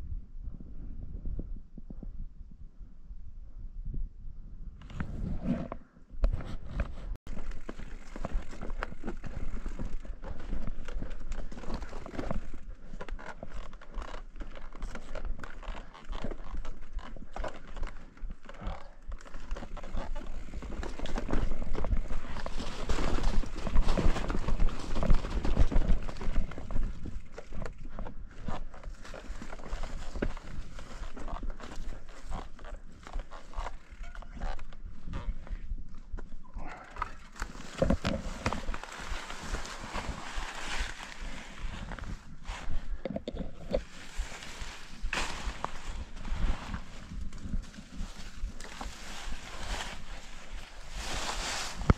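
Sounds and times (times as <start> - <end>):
bike rattling and knocking: 7.3 - 35.6
tyres crunching through leaves: 37.1 - 42.8, 43.8 - 51.9.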